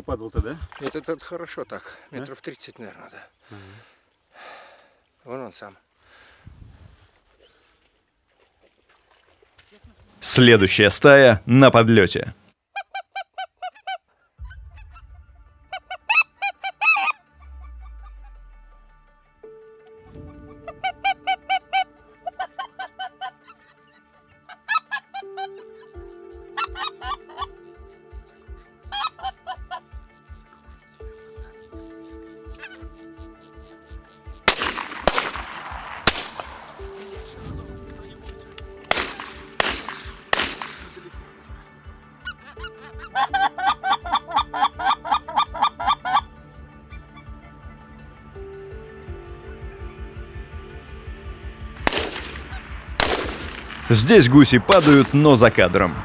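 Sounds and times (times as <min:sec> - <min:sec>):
geese honking: 0:12.7 - 0:50.8, 0:52.2 - 0:55.7
background music with low beat: 0:14.4 - 0:56.0
shotgun shots with echo: 0:34.5 - 0:36.8, 0:38.8 - 0:40.9, 0:51.8 - 0:54.1, 0:54.7 - 0:55.2.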